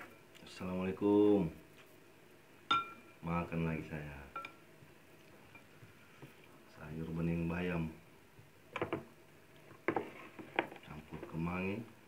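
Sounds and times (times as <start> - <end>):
spoon clinking against bowl: 2.7 - 3.1, 4.4 - 4.6.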